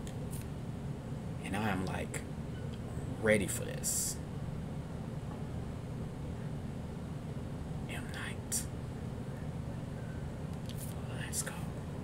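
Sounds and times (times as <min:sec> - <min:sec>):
low room hum: 0:00.0 - 0:12.0
man whispering: 0:07.8 - 0:08.7, 0:10.8 - 0:11.9.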